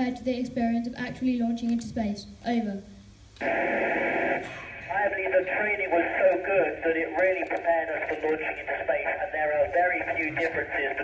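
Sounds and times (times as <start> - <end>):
radio receiver hiss: 3.3 - 11.0.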